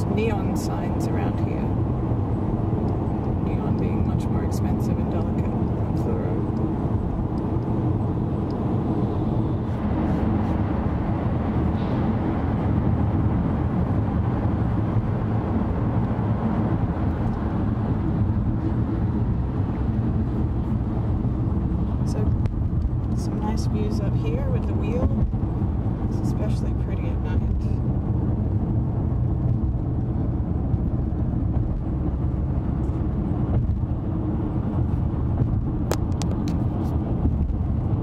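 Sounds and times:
car road noise rumble: 0:00.0 - 0:38.0.

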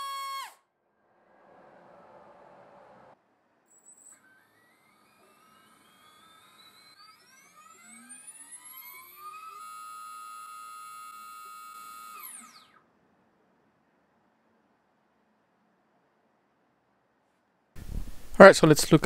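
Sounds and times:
electric motor whine: 0:00.0 - 0:00.6, 0:02.8 - 0:12.9.

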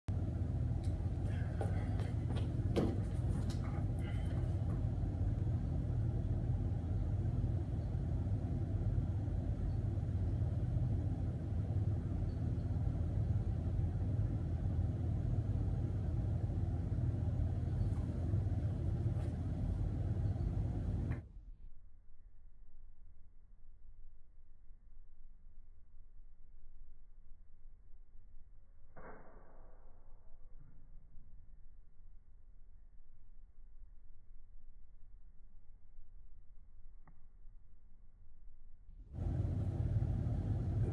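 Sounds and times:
low mechanical hum: 0:00.1 - 0:40.9.

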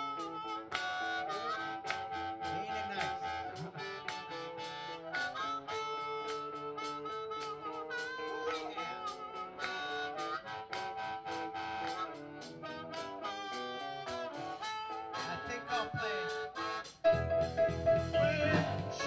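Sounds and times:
harmonica solo: 0:00.0 - 0:19.0
live blues band: 0:00.0 - 0:19.0.

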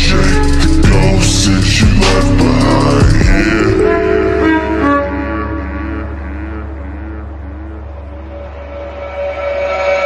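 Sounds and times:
deep bass drone: 0:00.0 - 0:10.0
wavering higher synth tone: 0:03.6 - 0:10.0.

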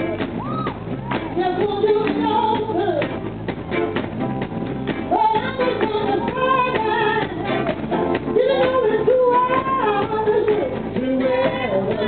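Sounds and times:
soul band playing: 0:00.0 - 0:12.0
person singing: 0:05.1 - 0:12.0.

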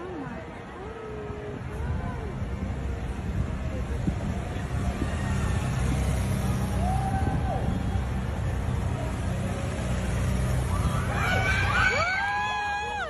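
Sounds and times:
vehicle engines rumbling: 0:00.0 - 0:13.0.

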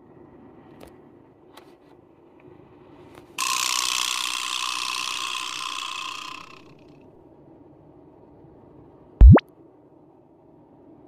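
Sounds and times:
rattling ratchet sound effect: 0:03.4 - 0:06.7.

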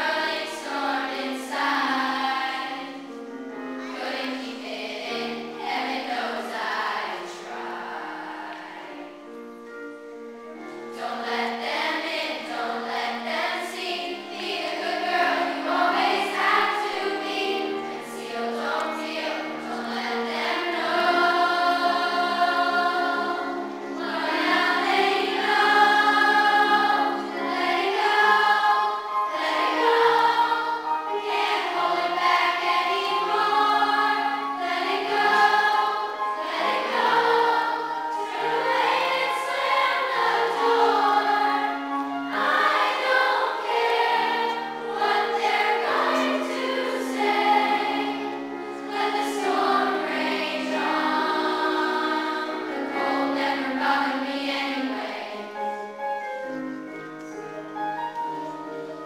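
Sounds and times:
children's choir singing: 0:00.0 - 0:59.0.

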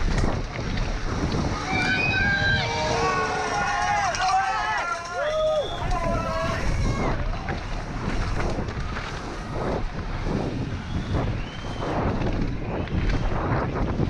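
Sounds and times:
bike rumbling on rough trail: 0:00.0 - 0:14.0
wind buffeting microphone: 0:00.0 - 0:14.0
voices shouting: 0:01.5 - 0:07.4.

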